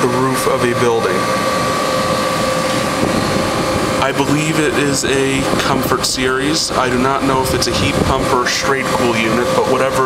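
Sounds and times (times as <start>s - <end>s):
air conditioner unit running: 0.0s - 10.0s
steady tones: 0.0s - 10.0s.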